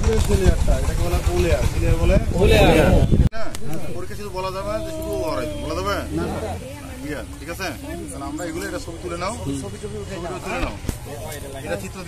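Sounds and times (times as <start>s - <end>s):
man's voice: 2.2s - 6.6s.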